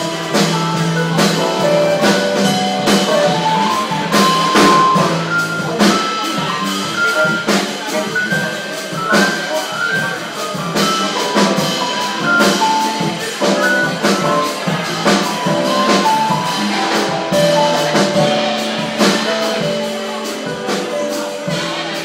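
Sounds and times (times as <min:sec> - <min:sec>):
drum and cymbal hits: 0:00.0 - 0:22.0
jazz combo playing: 0:00.0 - 0:22.0.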